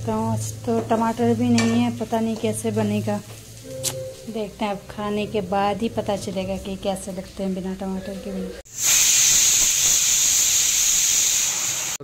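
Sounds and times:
pressure cooker steam hiss: 0:08.7 - 0:12.0.

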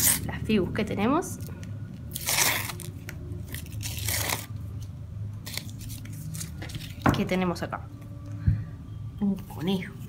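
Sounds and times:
foil packet tearing: 0:02.1 - 0:04.6, 0:05.4 - 0:07.0
paper rustling: 0:05.4 - 0:07.0.

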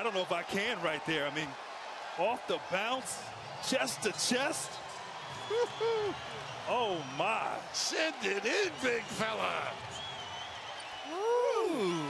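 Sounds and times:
faint arena background: 0:00.0 - 0:12.0.

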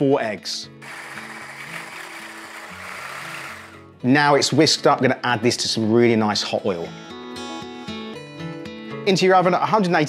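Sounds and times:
background music: 0:00.0 - 0:10.0
stick blender running: 0:00.8 - 0:03.8.

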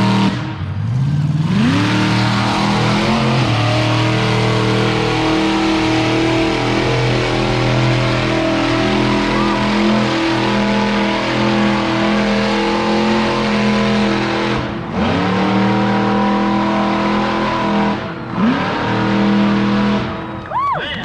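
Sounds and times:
engine at high revs: 0:00.0 - 0:20.4.

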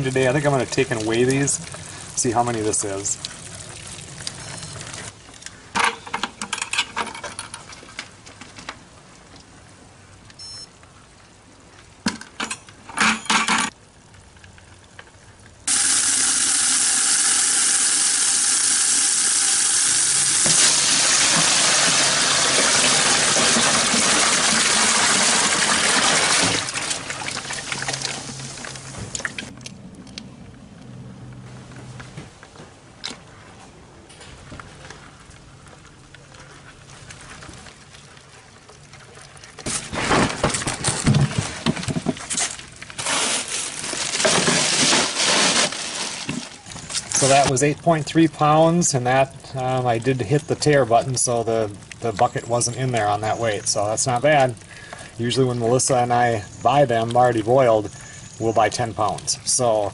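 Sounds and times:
hose water gushing into bucket: 0:00.0 - 0:05.1, 0:15.7 - 0:29.5, 0:42.3 - 0:59.9
knocks and rattles: 0:39.6 - 0:42.4.

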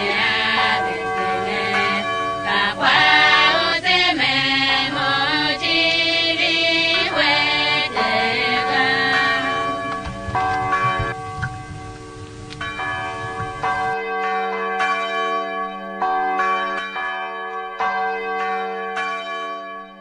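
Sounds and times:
church bells ringing: 0:00.0 - 0:20.0.

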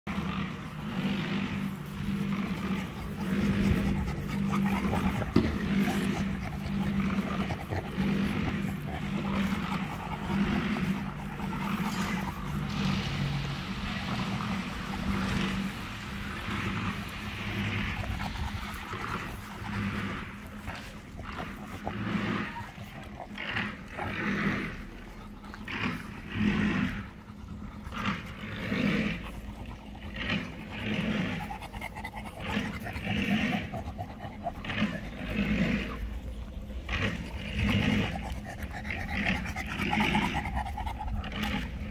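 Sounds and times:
puppies growling: 0:00.0 - 0:41.9.

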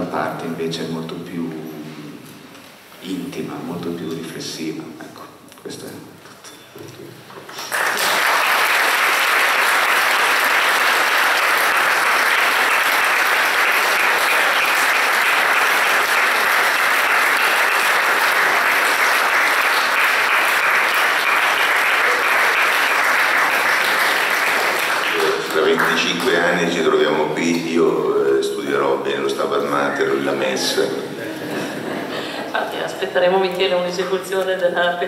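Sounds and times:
audience applauding: 0:07.5 - 0:27.1.

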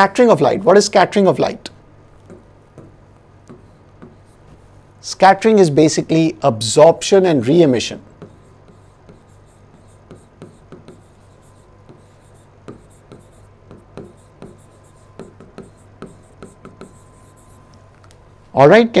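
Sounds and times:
low steady hum: 0:00.0 - 0:19.0
pen tapping on writing board: 0:02.2 - 0:04.2, 0:08.2 - 0:11.2, 0:11.8 - 0:17.0.

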